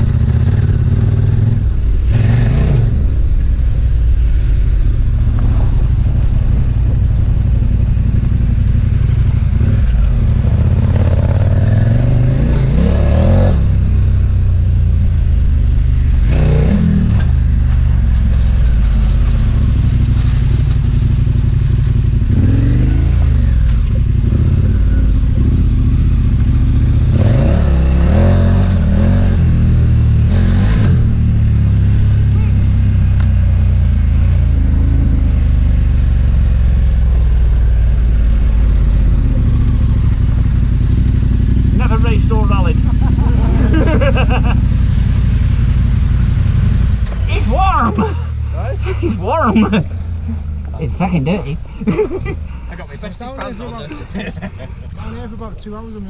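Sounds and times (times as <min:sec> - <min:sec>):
motorcycle engine revving: 0:00.0 - 0:56.0.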